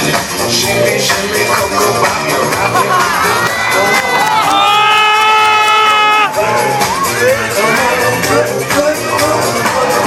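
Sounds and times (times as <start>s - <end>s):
dance music: 0.0s - 10.0s
audience cheering and shouting: 2.6s - 8.3s.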